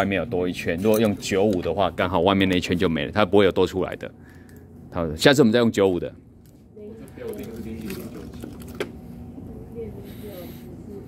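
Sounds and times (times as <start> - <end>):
plastic cups clicking and knocking: 7.3 - 9.0.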